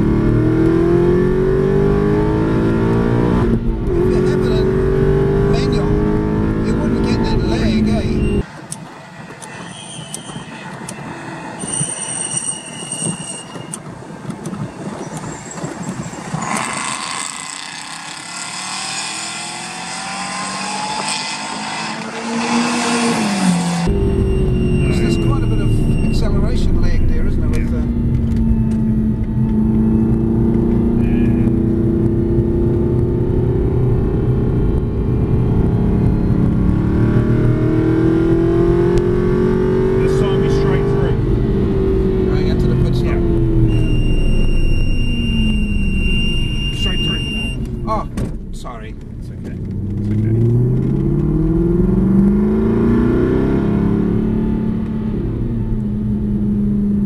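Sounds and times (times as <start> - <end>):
car engine revving: 0.0 - 9.0, 15.6 - 57.0
steady high beep: 6.7 - 8.5, 9.5 - 13.8, 23.7 - 30.2, 43.6 - 48.1.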